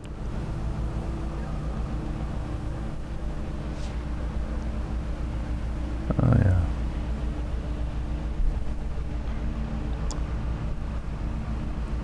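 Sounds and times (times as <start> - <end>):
faint droning hum: 0.0 - 12.0
low mechanical rumble: 0.0 - 12.0.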